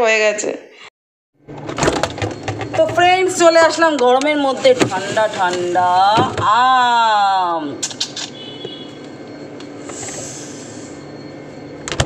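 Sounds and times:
refrigerator humming: 1.4 - 12.0.

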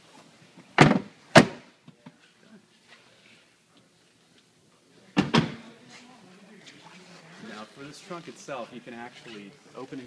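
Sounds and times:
car seatbacks thunking into latches: 0.8 - 1.6.

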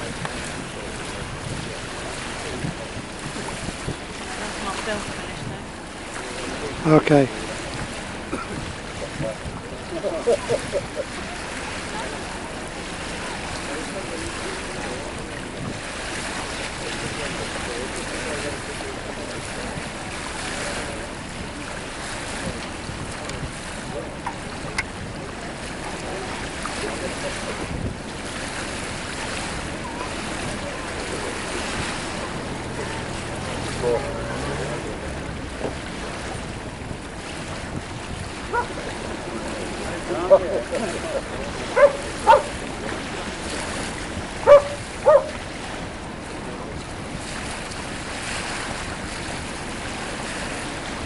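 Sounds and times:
faint voices: 0.0 - 51.0
water noise: 0.0 - 51.0
wind on microphone: 0.0 - 51.0
person laughing: 10.1 - 11.1.

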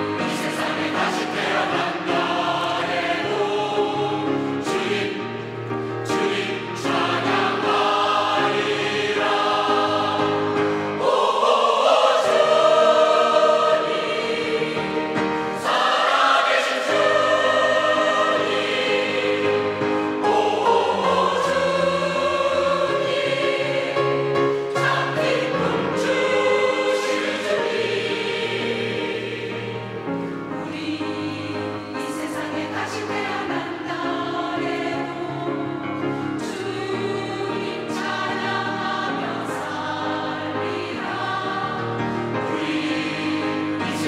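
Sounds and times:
mixed choir singing a hymn: 0.0 - 44.0.

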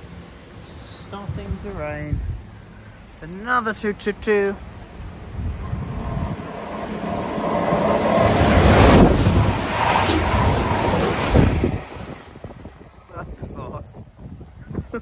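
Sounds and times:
diesel train passing at speed: 0.0 - 13.4.

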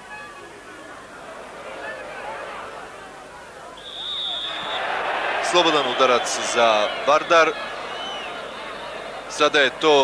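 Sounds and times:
stadium crowd chatter: 0.0 - 10.0
referee's whistle blast: 3.8 - 4.9.

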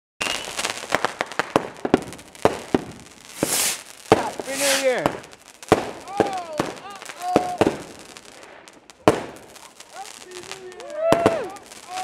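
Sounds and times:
high firework whistle: 0.2 - 1.0, 3.3 - 5.0
fireworks bangs and pops: 0.2 - 12.0
hissing rush: 3.1 - 8.3, 9.4 - 12.0.

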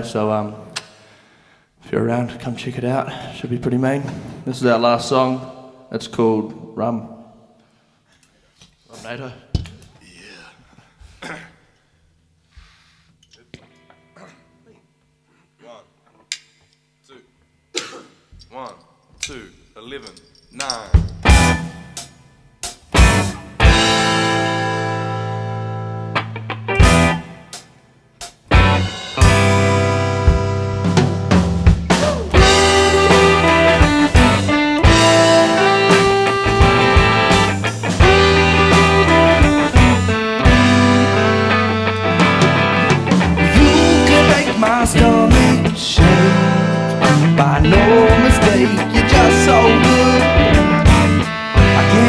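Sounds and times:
drumstick click: 16.3 - 16.8
rock band playing: 20.9 - 52.0
person calling out: 31.9 - 32.8.

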